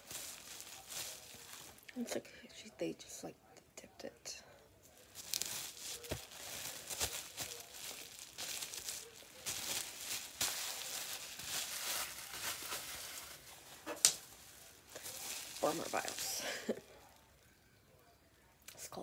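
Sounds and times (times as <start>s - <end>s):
packaging crinkling: 0.0s - 1.9s, 4.9s - 17.0s.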